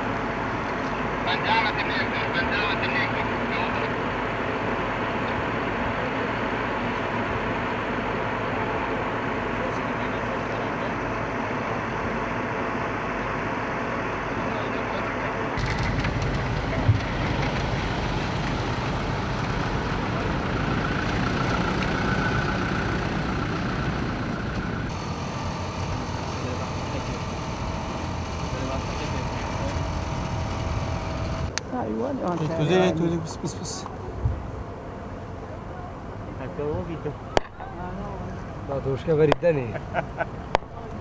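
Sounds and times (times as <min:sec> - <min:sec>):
outdoor field noise: 0:00.0 - 0:41.0
truck engines running: 0:00.0 - 0:41.0.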